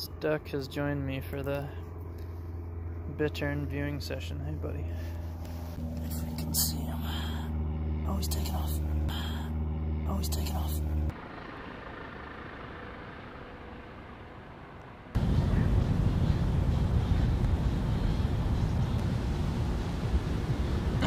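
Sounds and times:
low outdoor rumble: 0.0 - 21.0.

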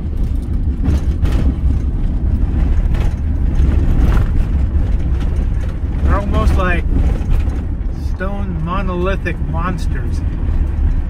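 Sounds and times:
engine and tyres rumbling: 0.0 - 11.0
faint rattles: 0.0 - 11.0.

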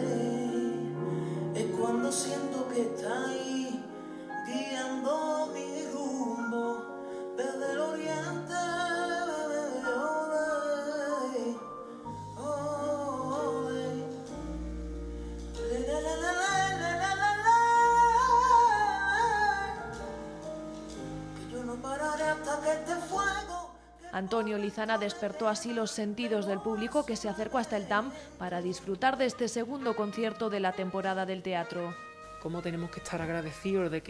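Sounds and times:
electric bass notes: 12.3 - 23.7.

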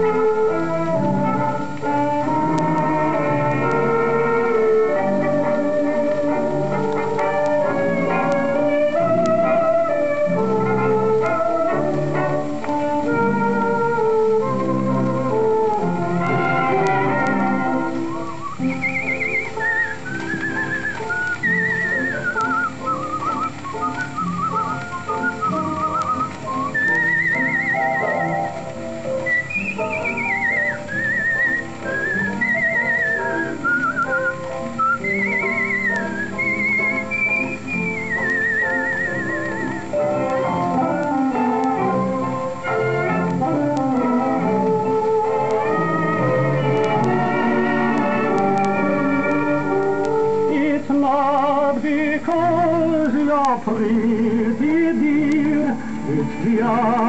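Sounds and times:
whistled melody with vibrato: 0.0 - 53.1
dance band playing a waltz: 0.0 - 57.0.

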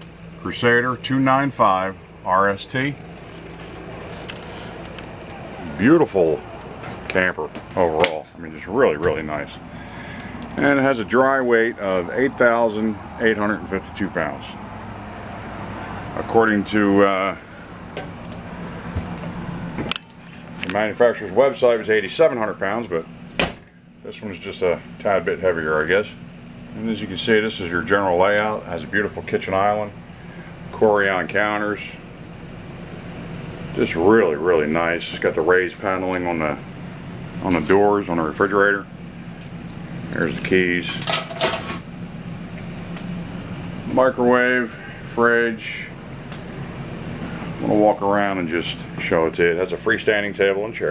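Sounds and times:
low mechanical machine hum: 0.0 - 50.9.

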